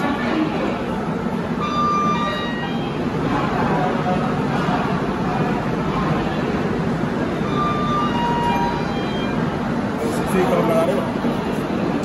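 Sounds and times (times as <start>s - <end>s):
railway platform noise: 0.0s - 12.0s.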